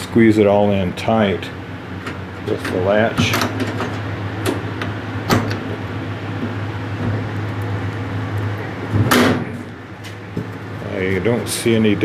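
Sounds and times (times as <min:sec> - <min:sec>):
steady low hum: 0:00.0 - 0:12.0
latch click: 0:05.3 - 0:05.6.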